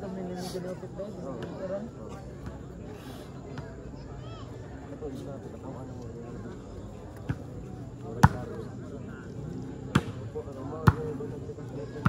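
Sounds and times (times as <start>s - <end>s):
crowd babble: 0.0s - 12.0s
volleyball hits: 9.9s - 10.2s.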